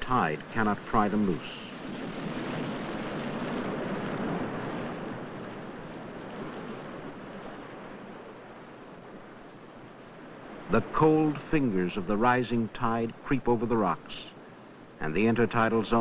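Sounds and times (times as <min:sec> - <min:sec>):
surf washing over rocks: 0:00.0 - 0:16.0.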